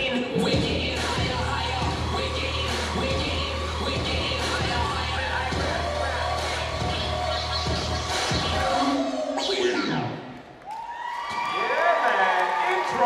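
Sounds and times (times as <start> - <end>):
dance music with heavy bass beat: 0.0 - 10.2
audience cheering: 10.6 - 13.0.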